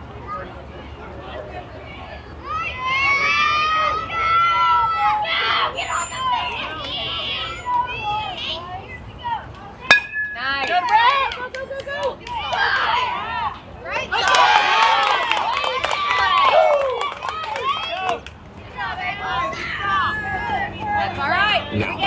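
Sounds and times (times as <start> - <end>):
crowd shouting and cheering: 2.1 - 8.6, 9.9 - 22.0
bat hitting ball: 9.9 - 11.0.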